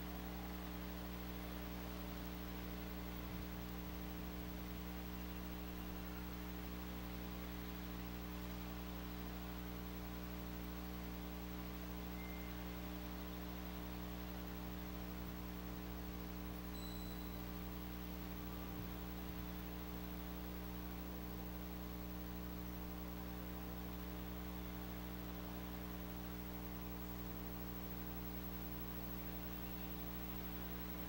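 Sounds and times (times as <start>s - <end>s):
electrical mains hum: 0.0s - 31.0s.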